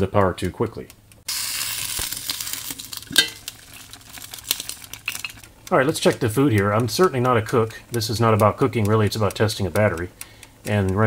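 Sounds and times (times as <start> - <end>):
water boiling and bubbling: 1.3 - 5.5.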